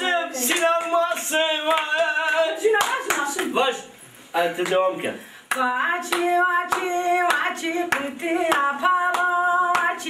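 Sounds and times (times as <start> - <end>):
hand claps: 0.4 - 3.6, 5.5 - 10.0
woman singing folk song: 5.5 - 10.0.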